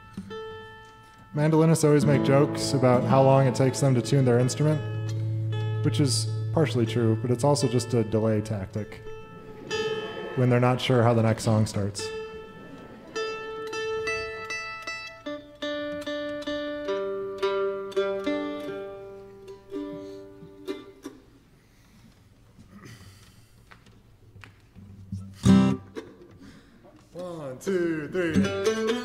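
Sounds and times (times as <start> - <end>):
mandolin strings plucked: 1.9 - 21.2.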